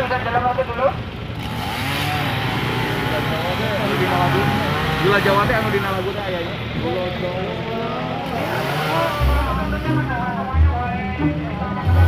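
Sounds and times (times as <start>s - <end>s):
people chattering: 2.4s - 12.0s.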